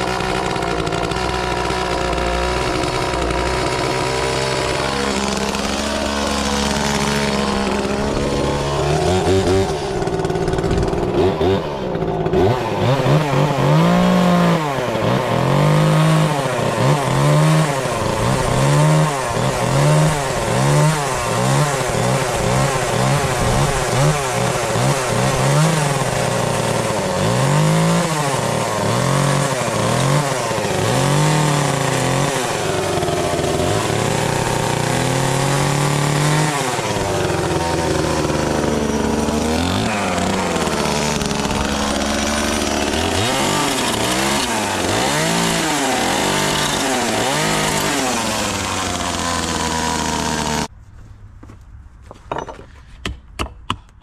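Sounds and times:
chainsaw revving and cutting wood: 0:00.0 - 0:50.7.

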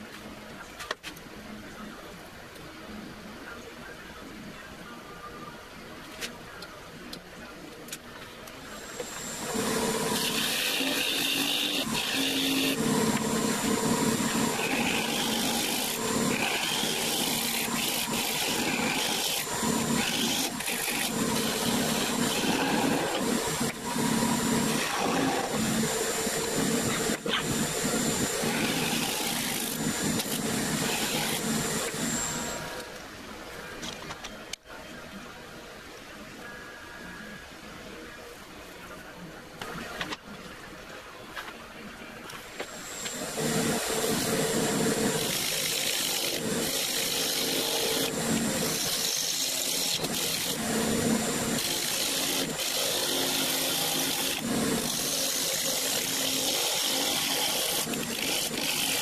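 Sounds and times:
wood lathe whining: 0:08.9 - 0:32.8, 0:42.8 - 0:59.0
turning tool shearing wood: 0:09.1 - 0:32.6, 0:42.8 - 0:59.0.

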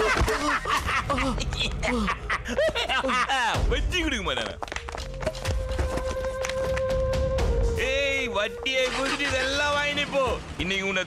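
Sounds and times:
man laughing mockingly: 0:00.0 - 0:03.6.

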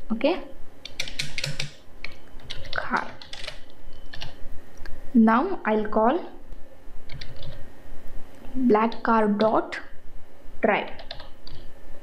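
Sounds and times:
computer keyboard key clicks: 0:00.8 - 0:04.3.

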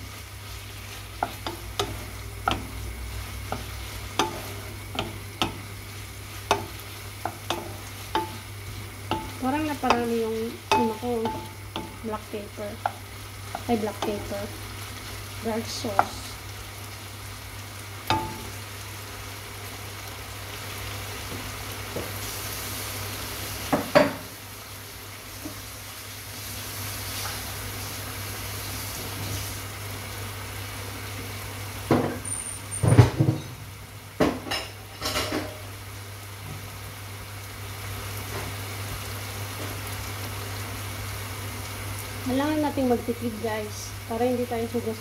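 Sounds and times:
steady low hum: 0:00.0 - 0:19.1
chicken sizzling in a pan: 0:00.0 - 0:45.0.

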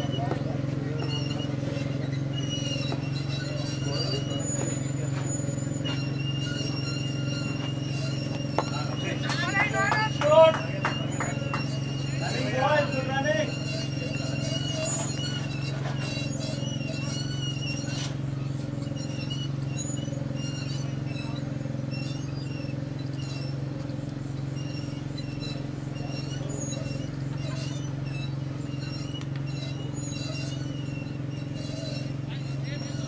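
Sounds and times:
faint distant voices: 0:00.0 - 0:23.3
steady low hum: 0:00.0 - 0:33.0.

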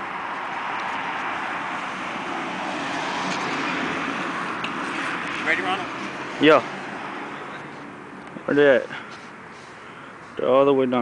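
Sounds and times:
vehicle road noise: 0:00.0 - 0:11.0.

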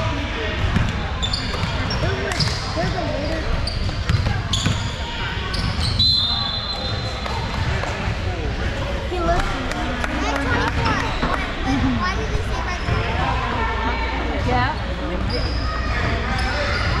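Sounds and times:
sneakers squeaking on court: 0:00.7 - 0:07.7.

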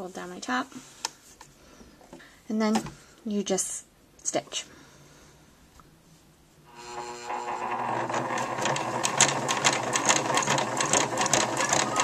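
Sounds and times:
electric sewing machine stitching: 0:06.7 - 0:12.0
rapid needle clicks: 0:07.3 - 0:12.0.

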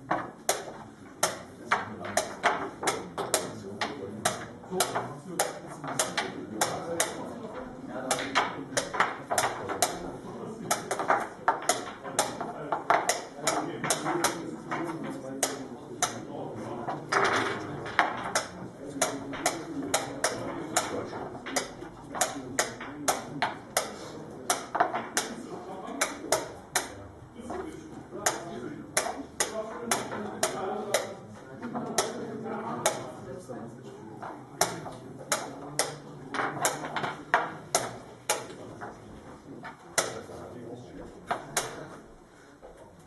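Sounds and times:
chess pieces clacking on board: 0:00.1 - 0:16.2, 0:16.9 - 0:25.4, 0:34.2 - 0:38.9.

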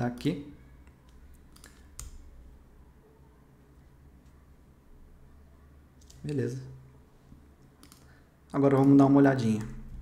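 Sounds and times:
low steady hum: 0:00.0 - 0:10.0
mouse and keyboard clicks: 0:00.2 - 0:02.3, 0:07.6 - 0:08.1.

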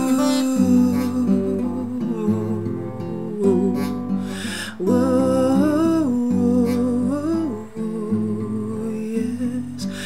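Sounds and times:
acoustic guitar chords: 0:00.0 - 0:10.0
man singing wordless melody: 0:00.0 - 0:10.0.

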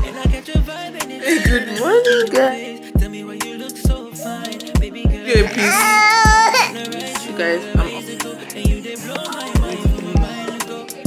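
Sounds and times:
music with steady drum beat: 0:00.0 - 0:05.6, 0:06.2 - 0:11.0
baby crying: 0:01.2 - 0:02.6, 0:05.3 - 0:08.0.

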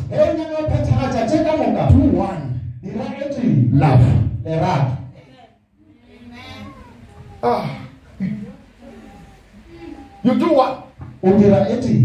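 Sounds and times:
man speaking into a microphone: 0:00.0 - 0:05.2, 0:10.2 - 0:12.0.

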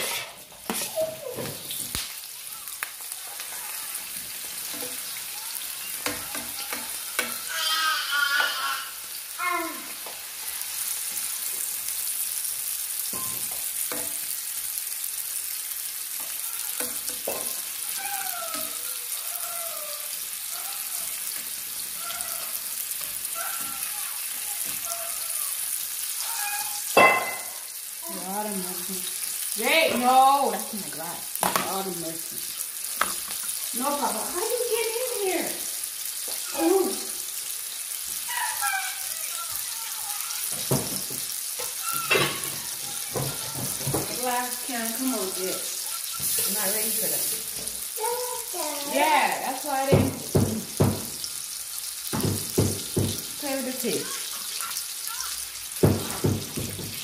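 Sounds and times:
food sizzling in frying pan: 0:00.0 - 0:57.0.

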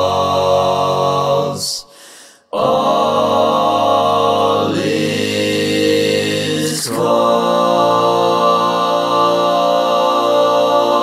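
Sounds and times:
a cappella barbershop chord singing: 0:00.0 - 0:01.9, 0:02.5 - 0:11.0.

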